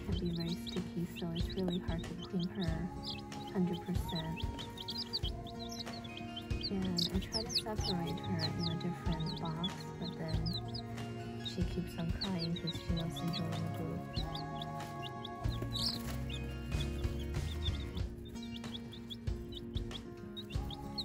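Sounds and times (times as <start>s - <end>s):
baby chicks peeping: 0.0s - 21.0s
music with long held notes: 0.0s - 21.0s.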